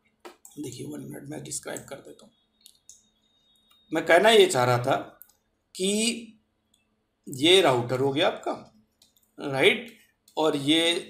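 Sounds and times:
man speaking: 0:00.5 - 0:02.3, 0:03.9 - 0:05.2, 0:05.8 - 0:06.4, 0:07.3 - 0:08.7, 0:09.4 - 0:11.0.

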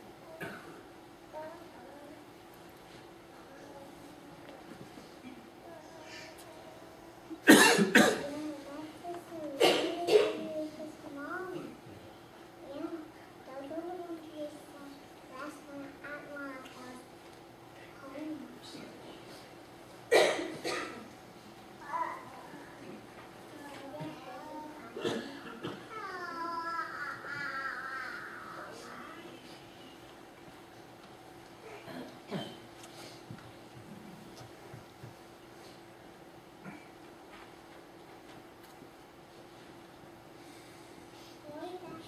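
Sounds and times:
person coughing: 0:07.4 - 0:08.3, 0:09.6 - 0:10.5, 0:20.1 - 0:21.1, 0:25.0 - 0:25.9, 0:31.7 - 0:32.6
small child crying: 0:25.9 - 0:28.9.

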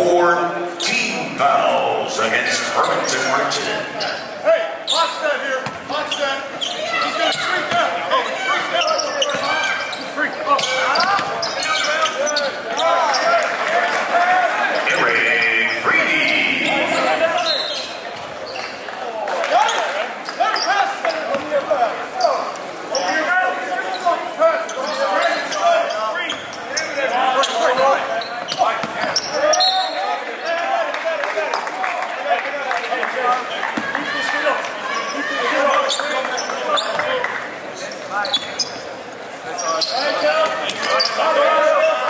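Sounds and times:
crowd voices: 0:00.0 - 0:42.0.

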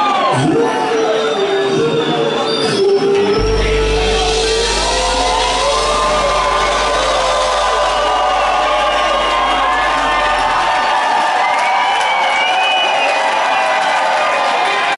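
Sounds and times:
crowd cheering and whooping: 0:00.0 - 0:14.9
low held note ringing: 0:03.4 - 0:10.8.

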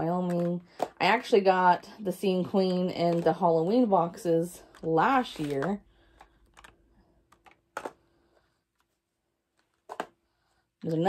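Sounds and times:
small boxes clicking onto a stack: 0:00.2 - 0:01.1, 0:04.7 - 0:08.1, 0:09.6 - 0:10.2.

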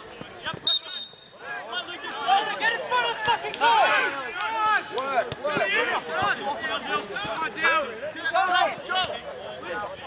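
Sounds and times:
players shouting: 0:00.0 - 0:10.0.

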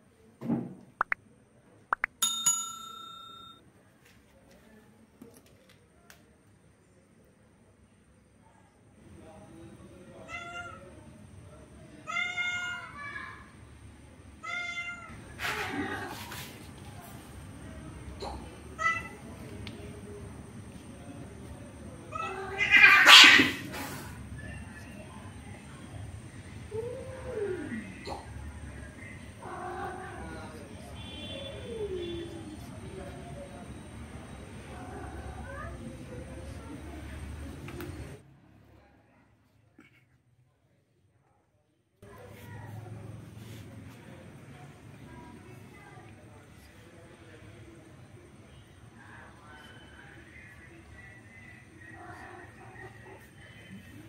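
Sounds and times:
cats meowing: 0:22.1 - 0:23.6.

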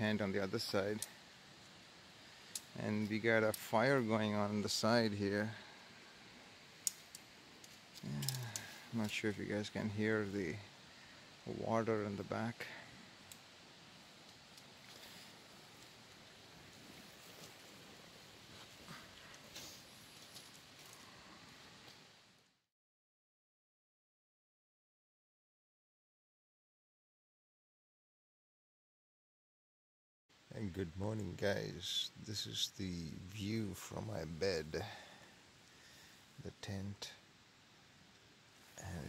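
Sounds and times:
person speaking: 0:00.0 - 0:01.2, 0:02.7 - 0:05.6, 0:08.0 - 0:10.7, 0:30.6 - 0:35.1, 0:38.8 - 0:39.0
faint steady hiss: 0:00.0 - 0:22.7, 0:30.3 - 0:39.0
tent poles clicking: 0:02.4 - 0:02.7, 0:03.5 - 0:03.7, 0:06.8 - 0:08.8, 0:14.2 - 0:16.3
tent fabric rustling: 0:14.6 - 0:21.9.

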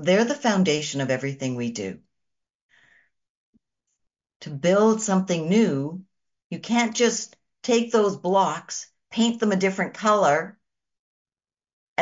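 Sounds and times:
faint short in-breath: 0:02.7 - 0:03.2.

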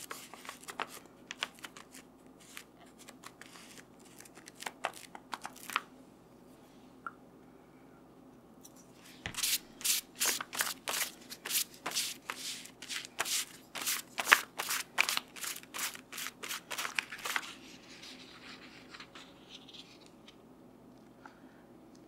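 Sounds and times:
strokes across paper: 0:09.0 - 0:20.1.

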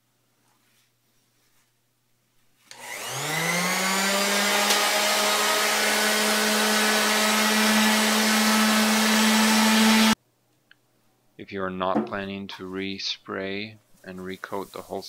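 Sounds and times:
orbital sander running: 0:02.7 - 0:10.2.

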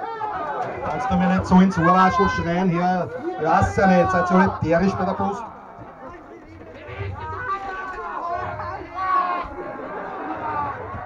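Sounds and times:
indistinct audience chatter: 0:00.0 - 0:11.0.

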